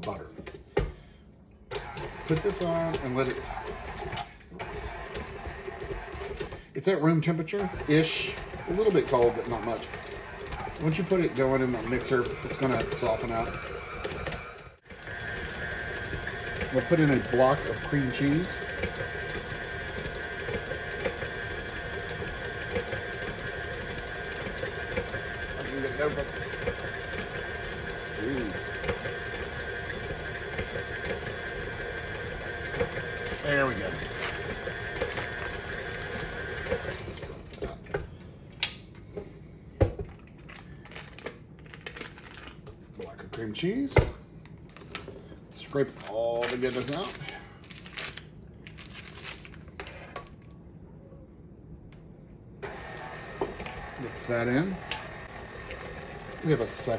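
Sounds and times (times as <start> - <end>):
stand mixer motor running: 1.7 - 6.6, 7.5 - 37.7, 52.6 - 56.9.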